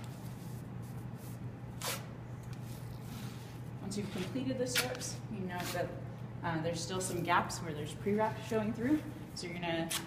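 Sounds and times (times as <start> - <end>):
tape ripping: 1.8 - 2.1.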